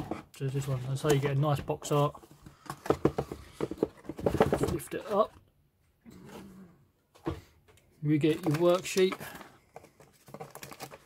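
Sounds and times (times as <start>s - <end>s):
paper sheets clicking and rustling: 8.2s - 11.0s.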